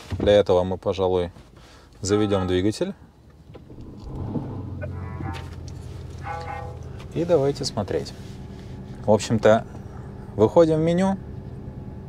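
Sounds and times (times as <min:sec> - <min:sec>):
car engine starting and idling: 0:03.2 - 0:12.0
faint car radio music: 0:04.8 - 0:07.7.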